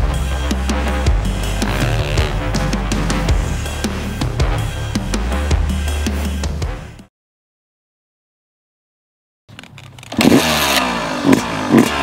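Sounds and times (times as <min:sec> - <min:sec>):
two-stroke engine revving: 0:01.5 - 0:03.1, 0:10.0 - 0:12.0.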